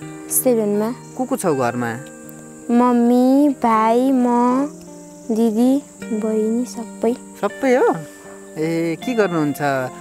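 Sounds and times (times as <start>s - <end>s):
faint insect chirring: 0.0s - 10.0s.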